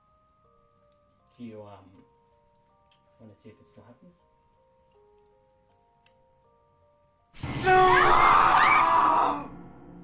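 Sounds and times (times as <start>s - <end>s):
soft music: 0.0s - 10.0s.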